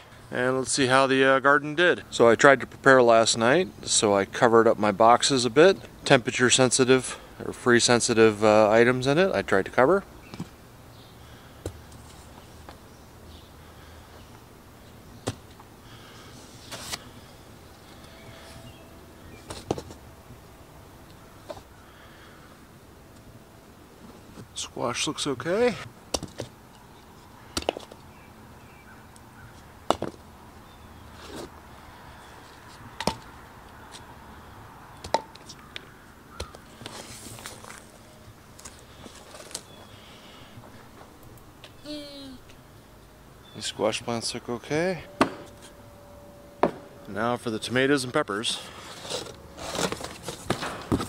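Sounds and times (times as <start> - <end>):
cardboard rustling and scraping: 16.4 - 17.2, 36.7 - 38.0, 38.6 - 39.8, 48.6 - 51.0
sharp knocks: 45.2 - 45.8, 46.6 - 47.0
wooden boards knocking: 46.6 - 46.9.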